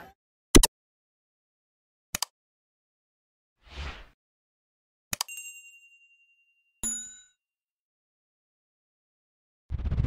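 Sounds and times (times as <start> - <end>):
bell-like ding: 5.3 - 7.4.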